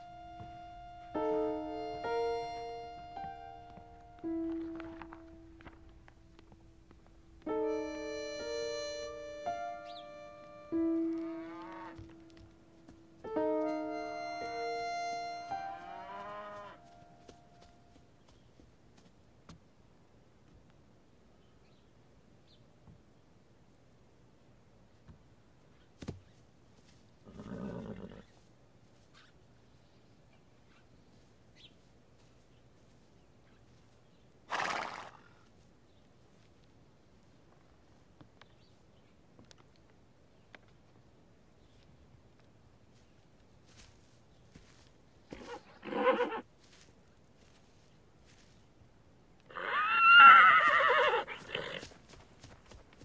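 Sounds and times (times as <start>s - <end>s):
horse neighing: 49.5s - 51.8s.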